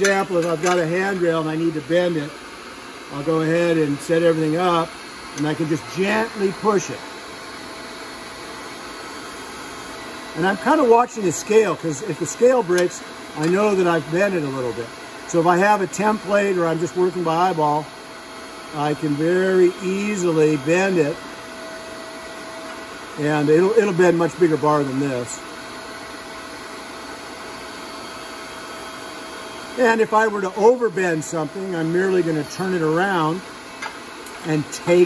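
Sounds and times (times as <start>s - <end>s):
electric motor and hydraulic pump hum: 0.0s - 35.0s.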